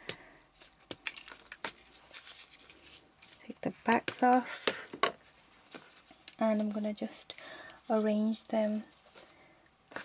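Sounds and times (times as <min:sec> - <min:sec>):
soft rustling: 0:00.4 - 0:10.0.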